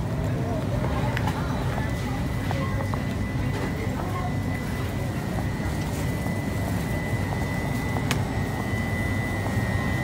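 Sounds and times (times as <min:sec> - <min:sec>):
store background rumble: 0:00.0 - 0:10.0.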